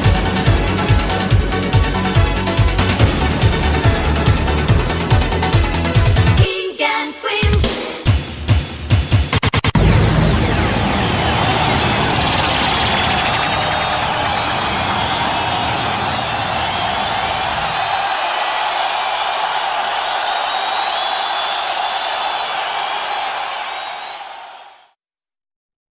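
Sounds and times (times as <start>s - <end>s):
dance track with synth wash: 0.0s - 6.5s, 9.2s - 16.0s.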